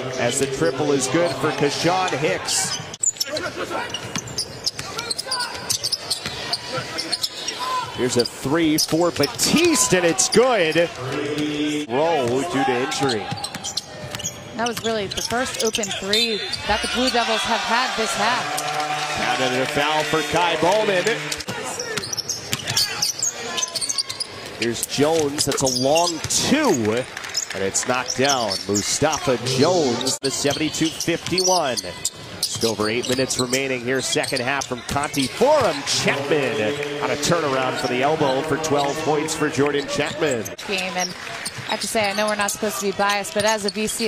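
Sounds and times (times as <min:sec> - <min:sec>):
arena crowd noise: 0:00.0 - 0:44.0
shoe squeaks: 0:01.1 - 0:10.8, 0:12.8 - 0:17.5, 0:21.7 - 0:35.9, 0:37.5 - 0:44.0
scattered voices: 0:04.8 - 0:13.5, 0:32.6 - 0:40.9.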